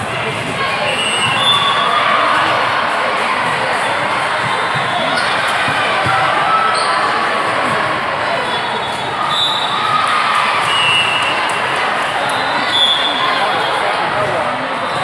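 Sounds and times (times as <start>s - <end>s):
hubbub of many voices: 0.0s - 15.0s.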